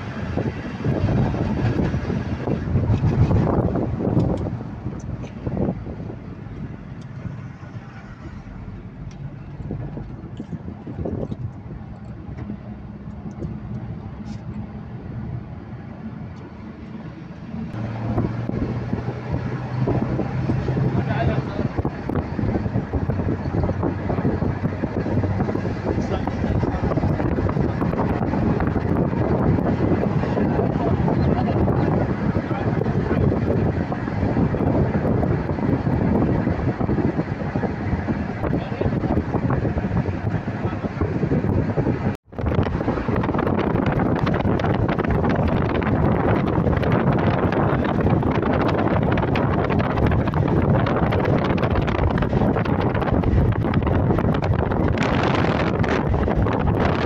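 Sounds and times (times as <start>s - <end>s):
car engine hum: 0.0s - 57.0s
road noise: 0.0s - 57.0s
wind and tyre noise: 0.0s - 57.0s.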